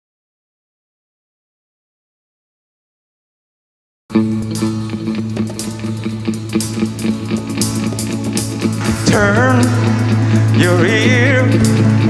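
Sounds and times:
held low note: 4.1s - 12.0s
strummed acoustic guitar: 4.1s - 12.0s.

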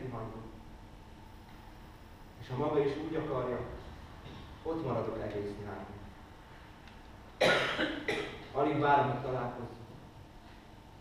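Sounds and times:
person coughing: 7.4s - 8.5s.

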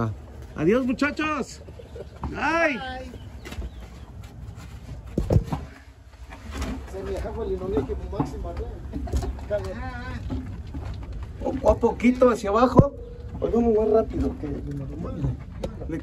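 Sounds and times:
knocks and scraping on wood: 1.6s - 16.0s.

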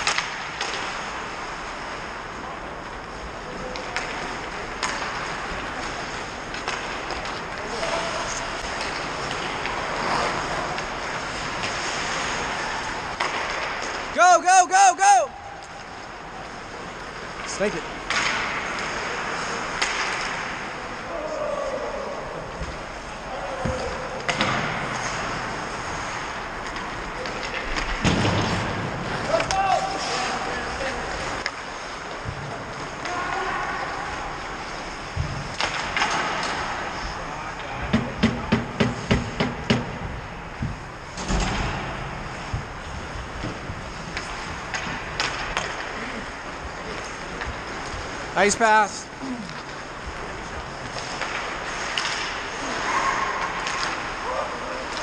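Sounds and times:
skates scraping on ice: 0.0s - 14.2s, 15.6s - 55.0s
players shouting: 14.1s - 15.6s, 21.0s - 22.6s, 29.2s - 31.0s
sticks and puck knocking: 37.9s - 40.1s.

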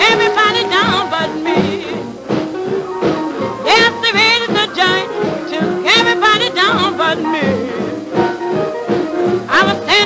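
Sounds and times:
rhythm and blues band music: 0.0s - 10.0s
sliding horn lines: 2.7s - 10.0s.

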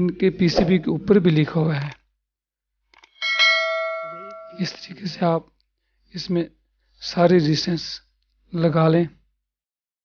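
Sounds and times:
bell chime: 3.2s - 5.1s.

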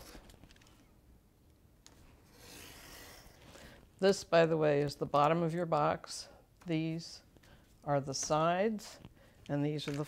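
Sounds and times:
knife cutting cardboard: 2.2s - 3.4s.

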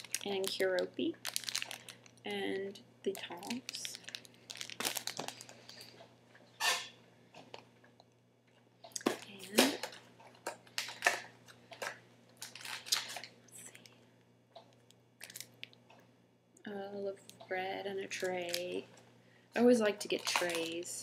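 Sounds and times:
plastic bags crinkling: 0.0s - 2.3s, 3.1s - 6.0s, 9.0s - 13.8s, 15.2s - 15.8s, 18.1s - 18.8s, 20.0s - 21.0s.

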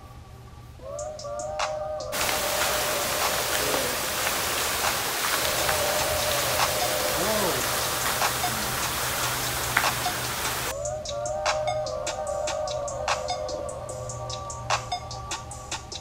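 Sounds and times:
faint music: 0.0s - 16.0s
fountain water splashing: 2.2s - 10.7s.

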